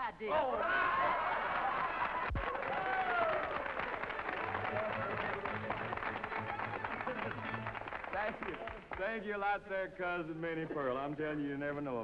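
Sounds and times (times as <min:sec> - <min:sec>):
audience applauding: 0:00.6 - 0:09.2
audience laughing: 0:04.5 - 0:07.8.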